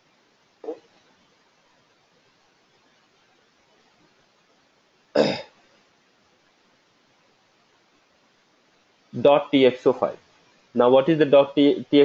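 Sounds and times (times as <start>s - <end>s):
faint room hiss: 0.0s - 12.0s
man clearing his throat: 5.2s - 5.6s.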